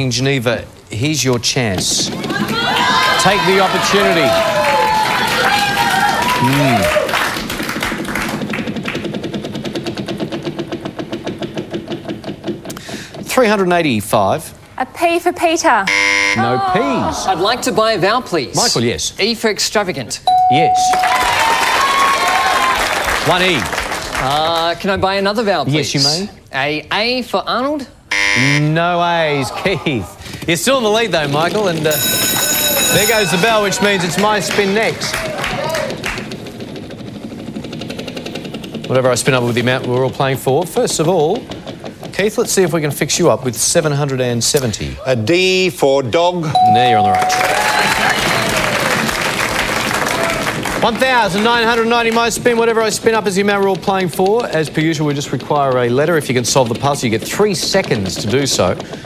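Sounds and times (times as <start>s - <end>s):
prize wheel clicking: 20.3s - 21.5s, 31.7s - 34.9s, 46.6s - 48.0s
low steady tone: 46.6s - 47.6s.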